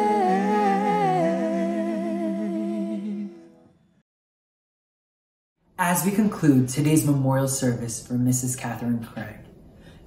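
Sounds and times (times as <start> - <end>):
person humming: 0.0 - 3.5.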